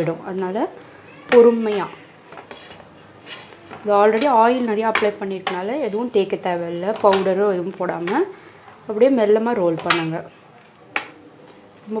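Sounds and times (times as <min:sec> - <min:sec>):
metal rolling pin rolling dough: 0:01.4 - 0:08.3.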